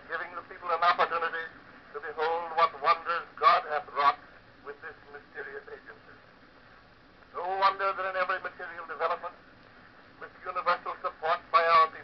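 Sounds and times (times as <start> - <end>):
man giving a speech: 0.1 - 6.2, 7.4 - 9.4, 10.2 - 12.0.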